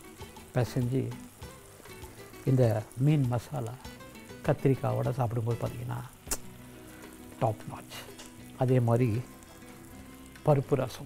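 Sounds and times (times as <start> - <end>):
faint steady hiss: 0.0 - 11.0
man speaking: 4.5 - 6.1, 7.4 - 9.3, 10.5 - 11.0
sharp click: 6.3 - 6.5.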